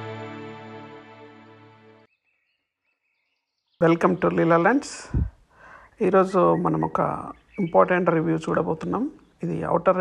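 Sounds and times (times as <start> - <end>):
intro music: 0.0 - 2.1.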